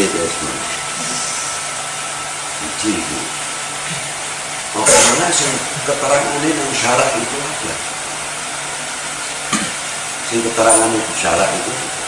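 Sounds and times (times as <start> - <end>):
man talking: 4.8 - 7.7, 10.3 - 11.8.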